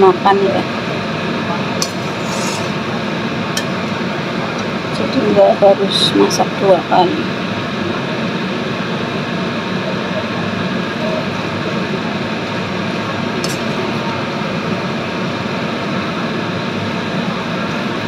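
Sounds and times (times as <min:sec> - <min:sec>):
noodles frying in a wok: 0:00.2 - 0:05.0, 0:06.0 - 0:18.0.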